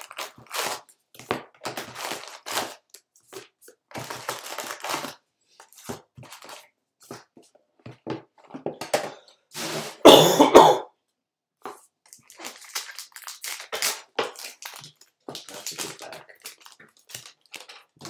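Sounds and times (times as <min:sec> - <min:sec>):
wrapper tearing and crinkling: 0:00.0 - 0:05.2, 0:12.0 - 0:18.0
person coughing: 0:10.0 - 0:10.9.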